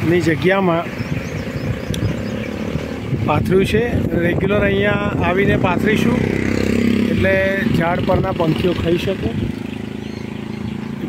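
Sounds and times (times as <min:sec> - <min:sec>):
vehicle engine running: 0:00.0 - 0:11.0.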